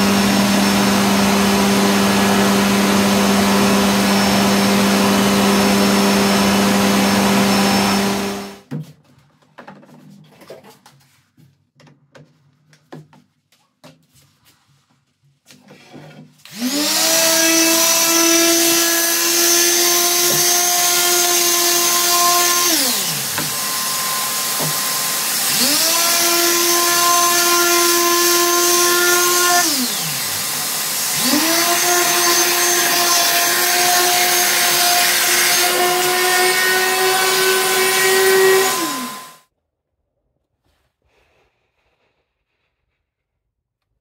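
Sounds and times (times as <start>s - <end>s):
orbital sander whining: 0.0s - 8.6s, 16.5s - 39.4s.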